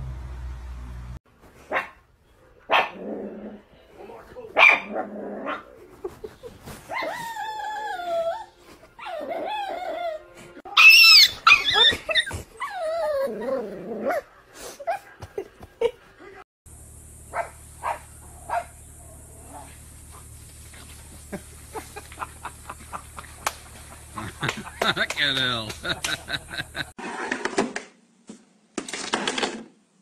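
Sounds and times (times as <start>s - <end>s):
dog barking: 1.7s - 2.0s, 2.7s - 3.0s, 4.6s - 5.6s, 17.3s - 18.8s
dog whining and howling: 6.9s - 14.2s.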